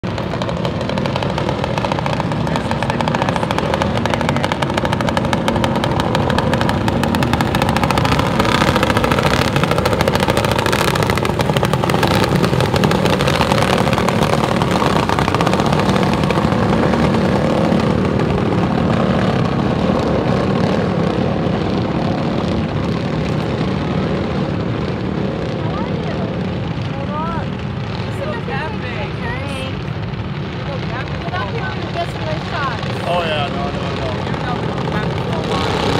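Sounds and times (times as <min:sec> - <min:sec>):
racing lawnmower engines droning: 0:00.0 - 0:35.9.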